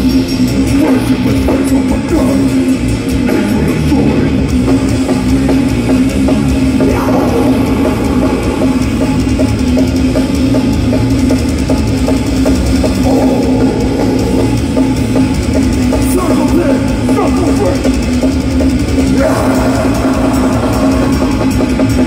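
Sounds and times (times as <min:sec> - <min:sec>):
heavy distorted guitars droning: 0:00.0 - 0:22.0
steady drum beat: 0:00.0 - 0:22.0.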